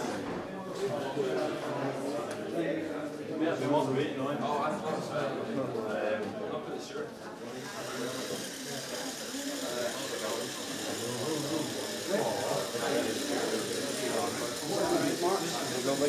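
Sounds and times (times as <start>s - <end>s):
murmur of people talking: 0.0s - 16.0s
electric motor whirring: 7.5s - 16.0s.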